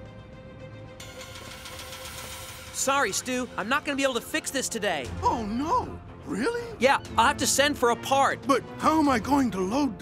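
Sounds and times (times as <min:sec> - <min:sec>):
man talking: 0:04.8 - 0:10.0.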